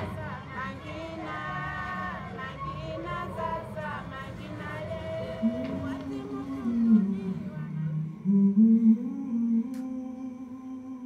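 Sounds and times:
soft sustained tone: 5.2 - 11.0
person humming low melody: 5.4 - 11.0.

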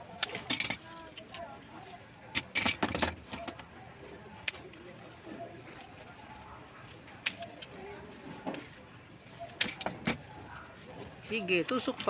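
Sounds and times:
faint background voices: 0.0 - 12.0
tools clicking and clinking: 2.3 - 3.6.

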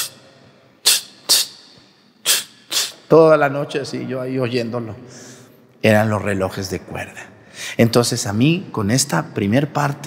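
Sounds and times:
man making mouth clock ticks: 0.8 - 3.1.

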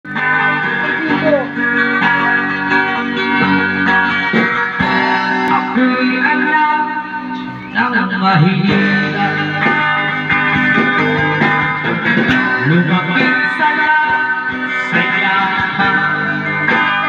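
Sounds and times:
electric guitar chords: 0.1 - 17.0.

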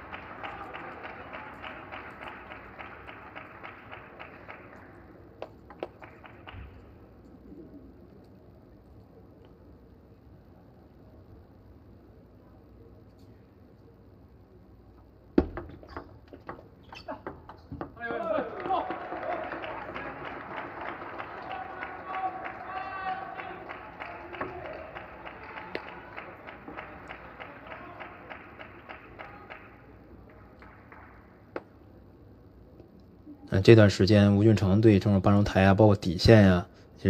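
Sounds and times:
crowd cheering: 0.0 - 5.2, 17.9 - 31.4
rhythmic clapping: 0.0 - 7.0, 18.0 - 31.7.

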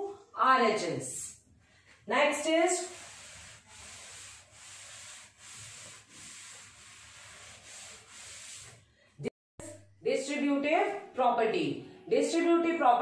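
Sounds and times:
cloth rubbing a blackboard: 2.1 - 8.8.

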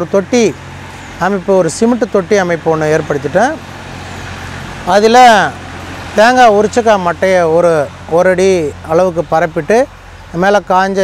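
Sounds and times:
man speaking: 1.2 - 3.6, 4.8 - 5.6, 6.2 - 11.0.

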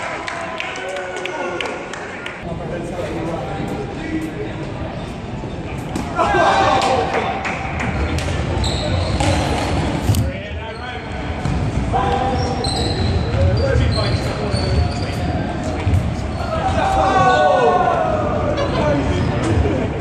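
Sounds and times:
trainers squeaking on wooden court: 8.6 - 16.9.

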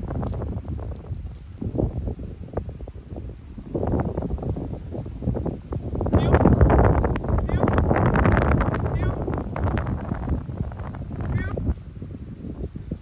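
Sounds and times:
wind buffeting microphone: 0.0 - 13.0
rustles and small clicks: 0.2 - 1.8, 9.6 - 12.1.

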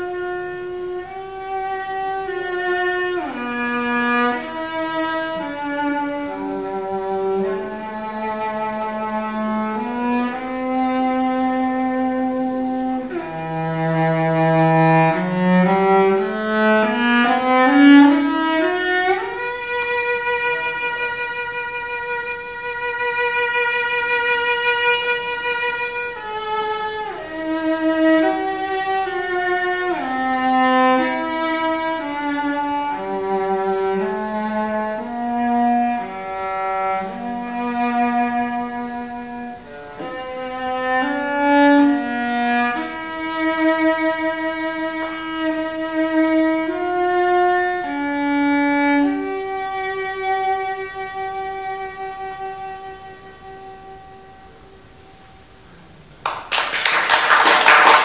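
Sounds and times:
solo cello played with bow: 0.0 - 56.0.

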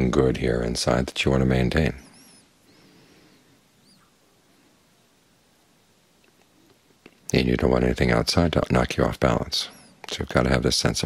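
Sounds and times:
high chirping bird calls: 1.9 - 4.2.

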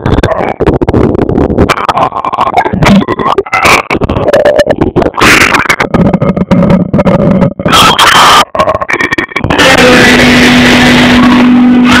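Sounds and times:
loud distorted gospel music: 0.0 - 12.0.

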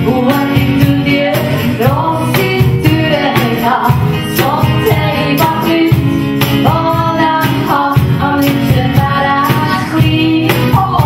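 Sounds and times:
cajon beat: 0.0 - 11.0
strummed acoustic guitar: 0.0 - 11.0
woman singing: 0.0 - 11.0.

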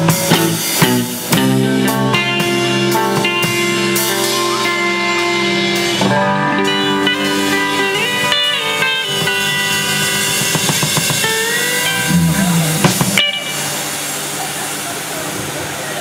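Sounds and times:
live band playing: 0.0 - 14.8.

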